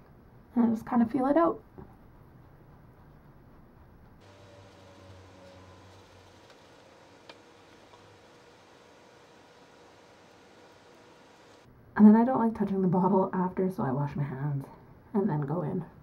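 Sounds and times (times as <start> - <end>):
faint hum: 0.0 - 12.6
low steady hiss: 3.1 - 16.0.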